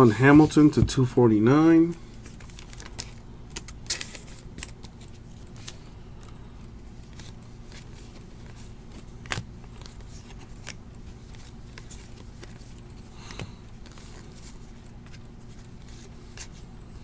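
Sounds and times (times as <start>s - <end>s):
steady low hum: 0.0s - 17.0s
cards flicking and snapping: 2.2s - 6.3s, 7.0s - 15.2s.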